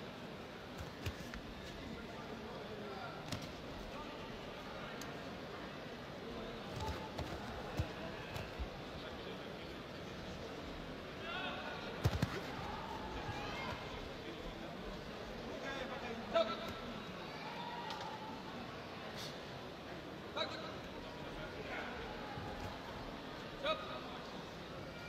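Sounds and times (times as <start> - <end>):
arena crowd noise: 0.0 - 25.0.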